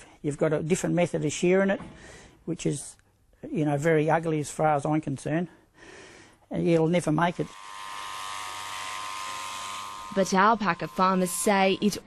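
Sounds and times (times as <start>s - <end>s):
electric shearing handpiece buzzing: 7.2s - 12.0s.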